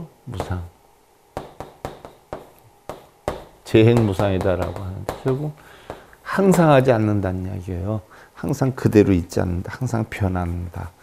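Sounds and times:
chalk tapping on chalkboard: 0:00.3 - 0:00.6, 0:01.4 - 0:06.6.

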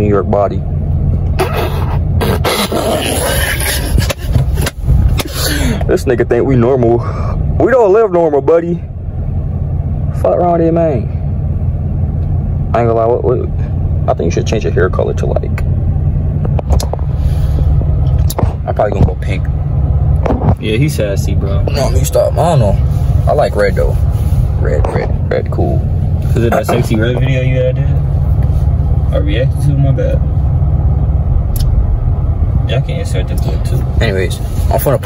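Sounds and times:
car cabin rumble: 0:00.0 - 0:35.0.

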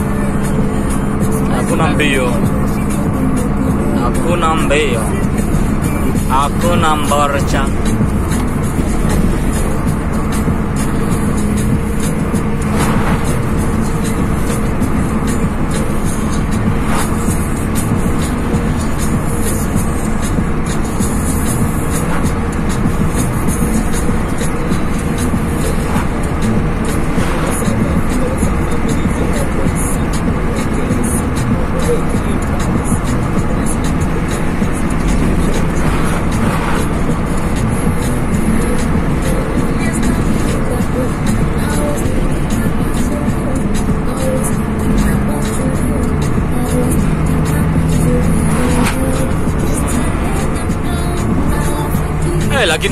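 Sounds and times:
car road and engine noise: 0:00.0 - 0:52.9
music and singing from screen: 0:00.0 - 0:52.9.

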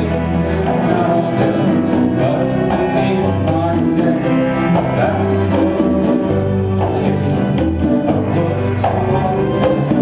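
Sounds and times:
live band playing: 0:00.0 - 0:10.0
upright piano chords: 0:00.0 - 0:10.0.

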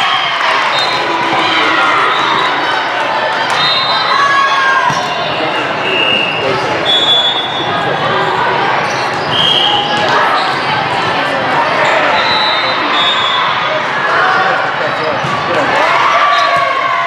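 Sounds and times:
many voices chattering: 0:00.0 - 0:17.0
referee whistle blasts: 0:05.8 - 0:07.8, 0:09.3 - 0:10.0, 0:12.0 - 0:13.6.

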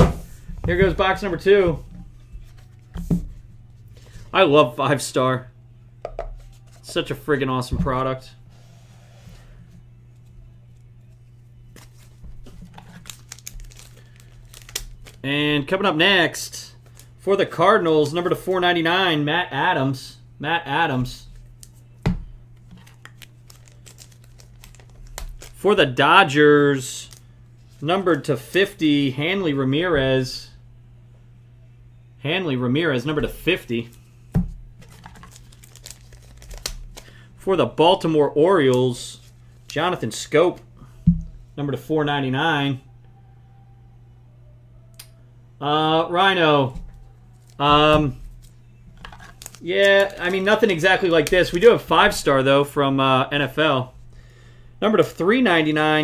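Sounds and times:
steady low hum: 0:00.0 - 0:56.0
packaging rustling and crinkling: 0:11.8 - 0:15.2, 0:22.6 - 0:25.6, 0:34.8 - 0:37.2, 0:46.9 - 0:51.8.

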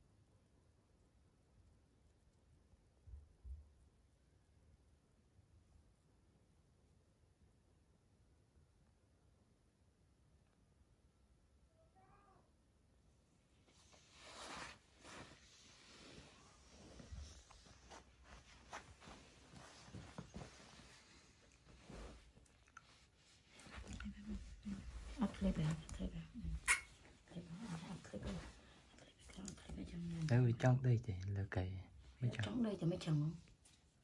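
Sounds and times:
baby monkey squeak: 0:26.6 - 0:26.9.

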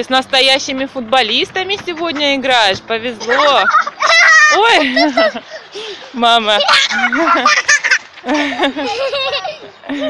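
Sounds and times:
children shouting and squealing: 0:03.2 - 0:10.0.

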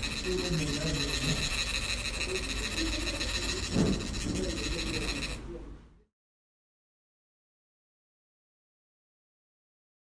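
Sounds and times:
faint indistinct voices: 0:00.0 - 0:06.1.

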